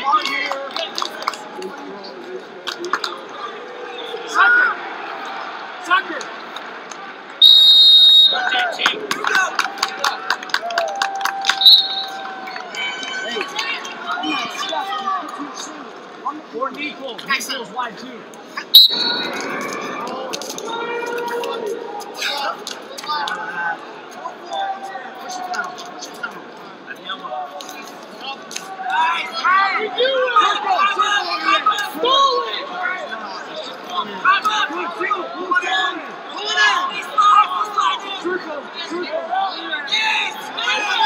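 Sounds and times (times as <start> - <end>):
referee's whistle: 7.4 - 8.6, 11.5 - 12.2, 18.7 - 19.4
sharp claps: 8.8 - 12.8.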